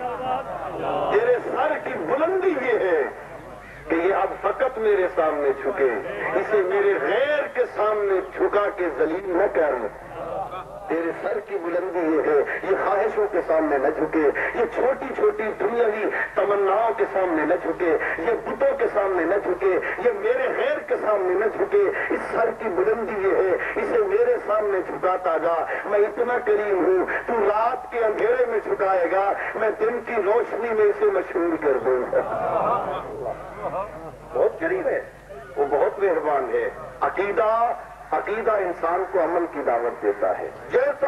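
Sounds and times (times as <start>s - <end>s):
man talking into a microphone: 0.0s - 41.0s.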